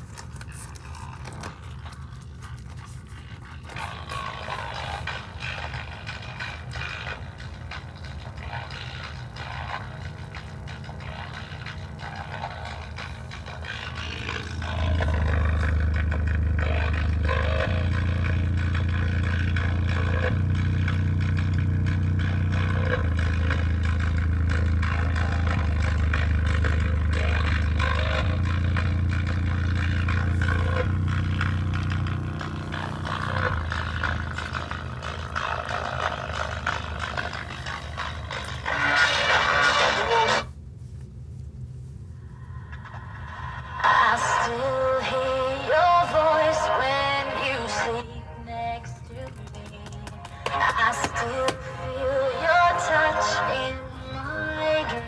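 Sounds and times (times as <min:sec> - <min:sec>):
bass-heavy music from woofer: 0:00.0 - 0:40.5, 0:42.3 - 0:55.0.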